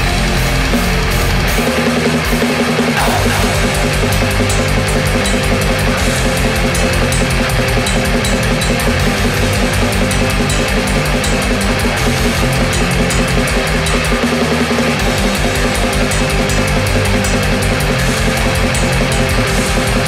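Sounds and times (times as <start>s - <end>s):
distorted guitars: 0.0s - 20.0s
fast drumming: 0.0s - 20.0s
rapid cymbal beat: 0.0s - 20.0s
low bass pulse: 3.0s - 20.0s.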